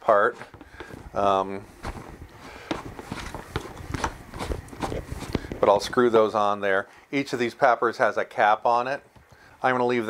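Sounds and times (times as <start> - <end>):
plastic scraping: 0.3 - 6.0.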